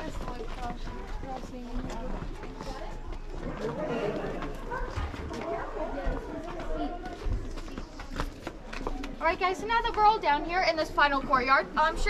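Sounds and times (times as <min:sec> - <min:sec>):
faint voices: 0:00.0 - 0:12.0
footsteps: 0:00.0 - 0:12.0.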